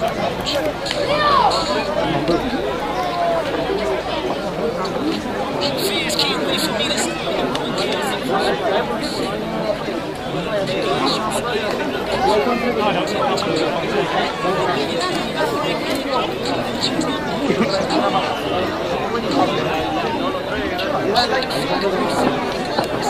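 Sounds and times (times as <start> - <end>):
crowd chatter: 0.0 - 23.0.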